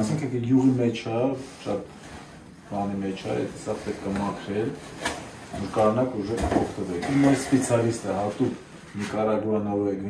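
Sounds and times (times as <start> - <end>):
man speaking: 0.0 - 1.9, 2.7 - 4.9, 5.5 - 10.0.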